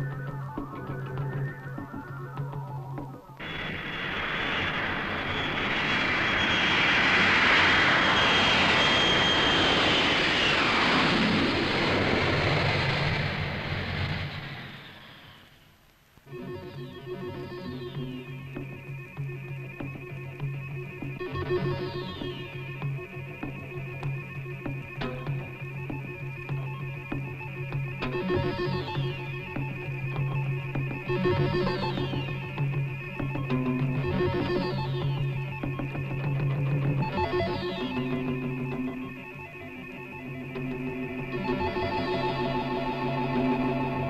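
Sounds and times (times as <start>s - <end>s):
guitar-led music: 0.0s - 3.4s, 16.3s - 44.0s
jet aircraft flying past: 3.4s - 15.6s, 38.8s - 44.0s.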